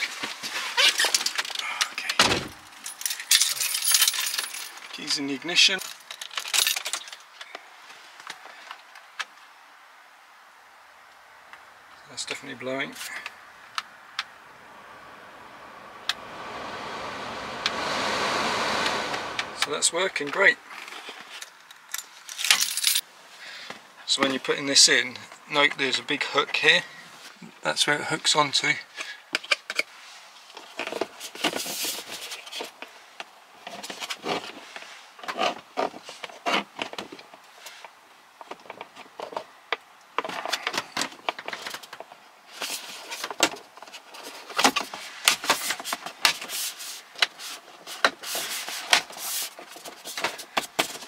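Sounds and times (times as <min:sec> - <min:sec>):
heater fan blowing air: 0:14.5 - 0:20.4.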